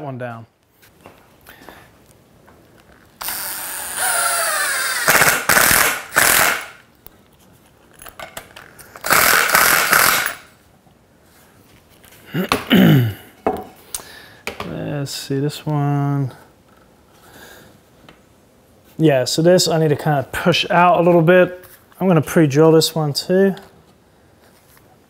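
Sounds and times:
cordless drill driving screws: 3.2s - 6.7s, 9.0s - 10.4s.

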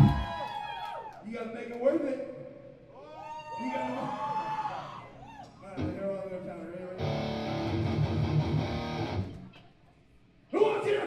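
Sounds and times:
amplified electric guitar and bass: 7.0s - 9.5s.

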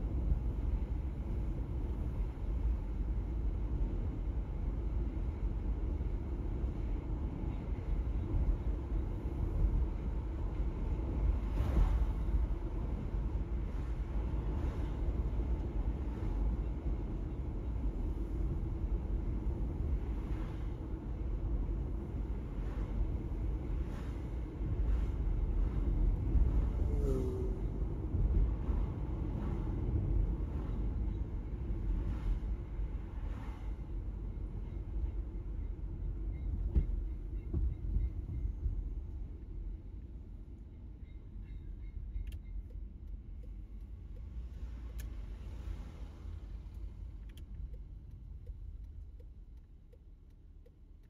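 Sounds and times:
car cabin road and engine noise: 0.0s - 51.0s.

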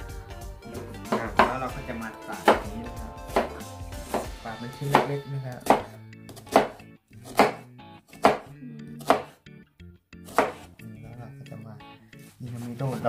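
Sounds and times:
knife chopping on wooden board: 1.0s - 1.7s, 2.4s - 2.7s, 3.3s - 9.4s, 10.3s - 10.8s.

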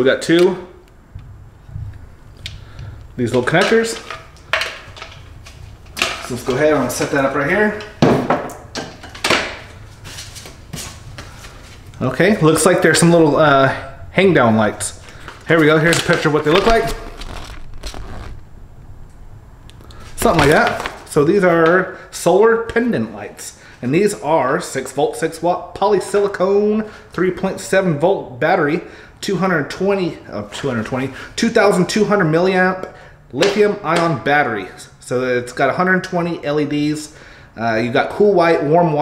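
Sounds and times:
handling noise of panel and cables: 2.4s - 12.9s, 15.0s - 18.4s, 20.1s - 21.8s
paper leaflet rustling: 15.0s - 18.4s, 20.0s - 21.2s.

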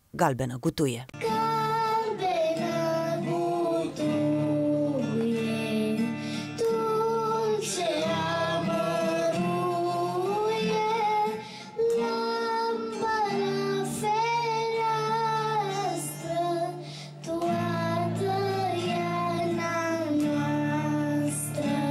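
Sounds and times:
acoustic guitar: 0.0s - 21.9s
girl singing: 1.2s - 21.9s.

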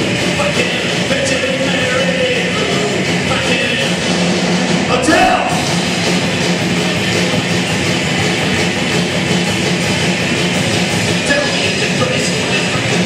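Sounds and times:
instrumental rock band music: 0.0s - 13.0s.

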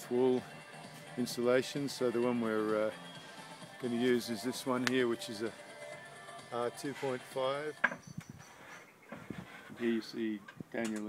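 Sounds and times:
man speaking: 1.2s - 3.0s, 3.8s - 5.6s, 6.5s - 7.8s, 9.8s - 11.0s.

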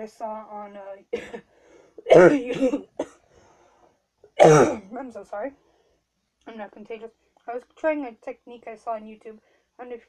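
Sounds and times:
woman coughing: 1.1s - 3.2s, 4.4s - 4.9s.

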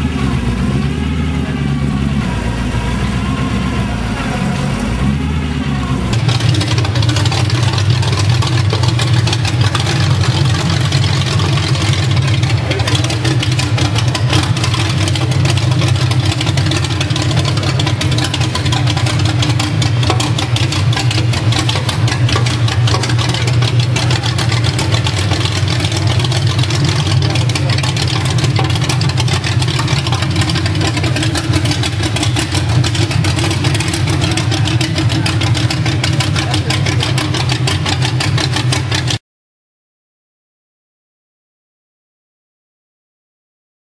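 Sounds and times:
car engine idling loudly: 0.0s - 39.2s.

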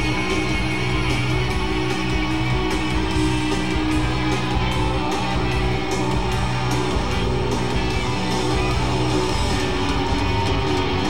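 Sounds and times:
electric guitar: 0.0s - 11.0s
live rock band playing: 0.0s - 11.0s.

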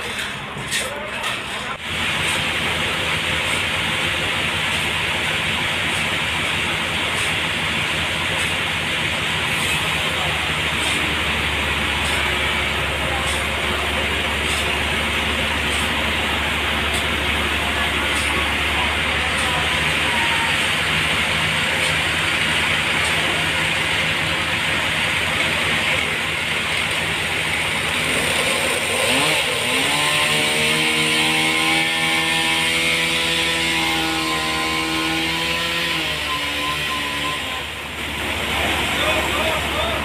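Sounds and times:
forklift engine revving: 1.8s - 40.0s.

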